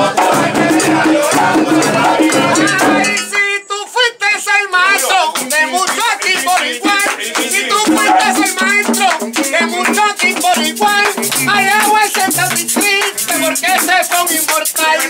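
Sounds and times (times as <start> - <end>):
frame drums played fast: 0.0 - 3.4, 5.0 - 15.0
men singing and calling: 0.0 - 15.0
hand claps: 4.9 - 15.0.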